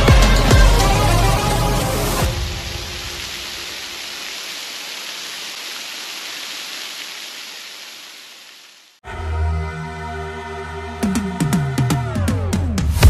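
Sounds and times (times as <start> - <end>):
water rushing down rock: 2.0 - 9.0.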